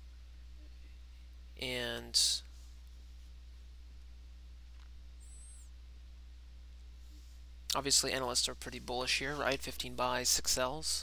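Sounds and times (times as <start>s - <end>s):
steady low hum: 0.0s - 11.0s
faint high chirp: 5.2s - 5.8s.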